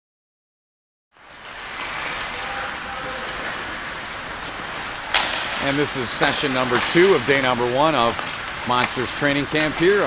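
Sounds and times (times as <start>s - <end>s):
skates on ice: 1.2s - 10.0s
ventilation hiss: 1.2s - 10.0s.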